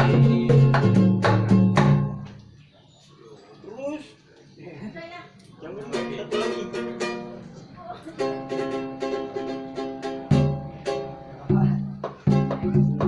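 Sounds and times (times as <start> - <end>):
ukulele strumming: 5.8 - 13.0.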